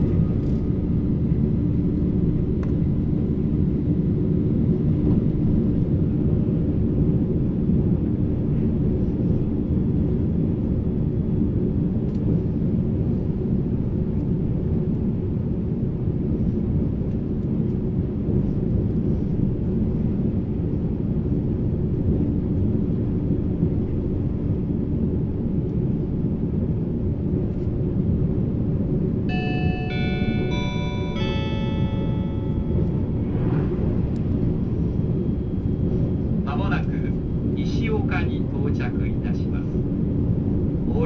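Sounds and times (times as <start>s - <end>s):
train wheels rumbling on rail: 0.0s - 41.0s
melodic chime over speakers: 29.3s - 33.2s.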